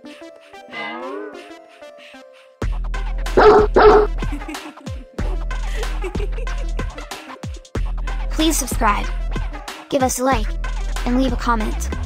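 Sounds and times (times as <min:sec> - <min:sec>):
upbeat background music: 0:00.0 - 0:12.0
dog barking: 0:03.4 - 0:04.2.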